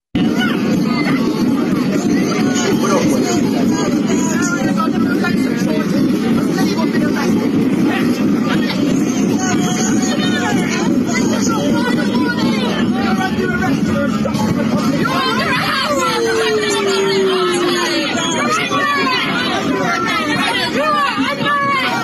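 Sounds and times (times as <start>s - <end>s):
crowd babble: 0.2s - 22.0s.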